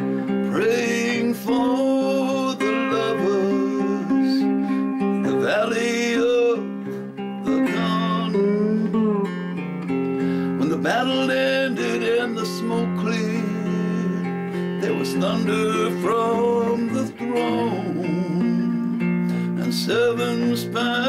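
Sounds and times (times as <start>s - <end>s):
slide guitar melody: 0.0s - 21.0s.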